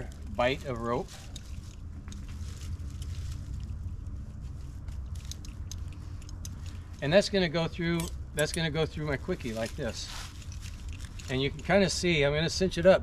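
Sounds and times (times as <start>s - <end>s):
rope rustling: 0.0s - 12.4s
steady low rumble: 0.0s - 13.0s
climbing hardware clicking: 4.7s - 12.0s.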